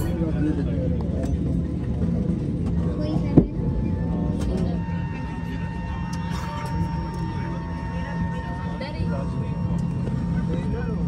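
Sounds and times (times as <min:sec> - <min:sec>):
cabin low drone: 0:00.0 - 0:11.0
passengers talking: 0:00.0 - 0:11.0.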